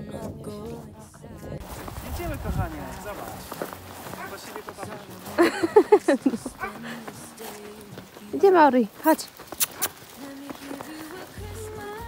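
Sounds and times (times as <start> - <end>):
footsteps on snow: 0.0 - 12.0
indistinct voices: 0.0 - 12.0.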